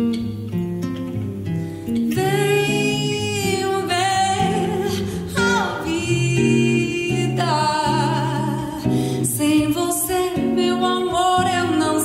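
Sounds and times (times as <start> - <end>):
acoustic guitar: 0.0 - 12.0
woman singing with vibrato: 2.1 - 12.0.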